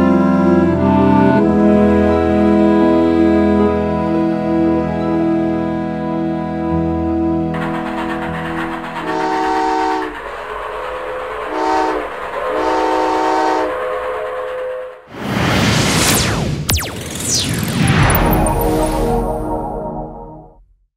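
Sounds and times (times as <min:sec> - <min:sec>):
steam locomotive whistle: 0:07.6 - 0:15.0
whoosh with falling tones: 0:15.0 - 0:20.5
steady noise: 0:15.2 - 0:20.3.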